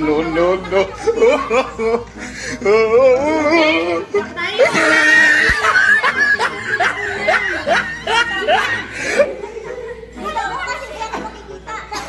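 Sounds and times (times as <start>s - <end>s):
person laughing: 0.1s - 10.0s.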